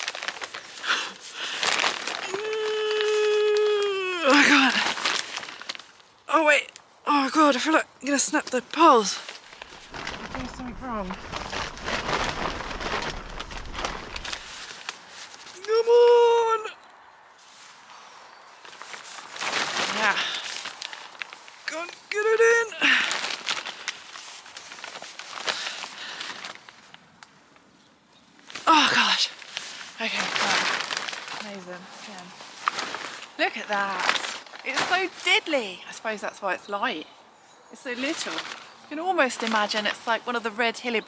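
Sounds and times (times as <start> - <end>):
tent poles scraping: 0.0 - 3.4, 8.8 - 15.7, 17.4 - 22.5, 23.2 - 26.9, 28.4 - 35.8, 37.9 - 40.2
tent fabric rustling: 0.0 - 6.2, 8.8 - 16.5, 17.4 - 27.0, 28.4 - 35.9, 37.8 - 40.2
person exclaiming with strain: 2.2 - 4.9, 15.6 - 16.7.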